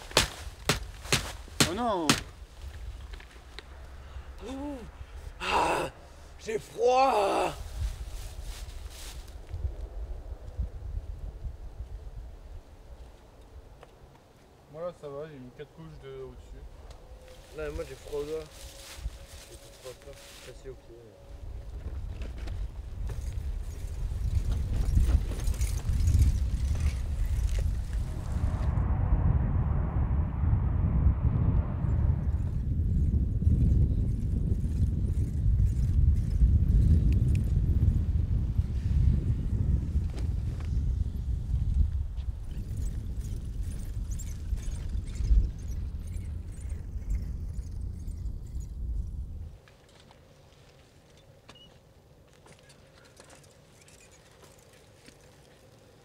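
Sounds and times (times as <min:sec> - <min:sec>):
wind buffeting microphone: 0:07.6 - 0:13.8, 0:20.7 - 0:49.6
bicycles rolling past: 0:21.5 - 0:28.1, 0:49.5 - 0:56.0.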